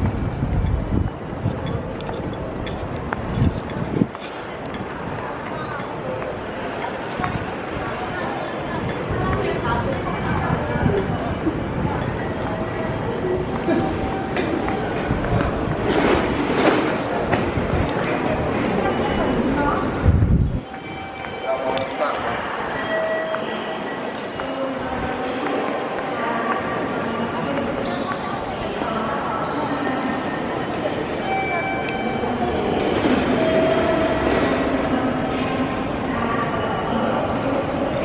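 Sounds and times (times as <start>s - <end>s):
railway station ambience: 0.0s - 38.0s
train rumbling on tracks: 0.0s - 38.0s.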